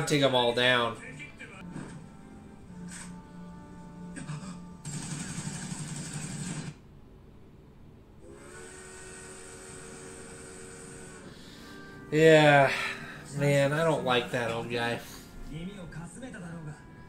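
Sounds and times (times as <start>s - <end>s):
held musical chord: 11.4s - 17.0s.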